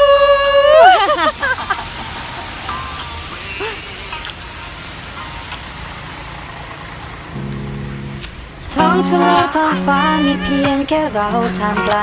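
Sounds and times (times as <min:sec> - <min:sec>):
road traffic rumble: 0:00.0 - 0:12.0
steady low tone: 0:07.4 - 0:11.9.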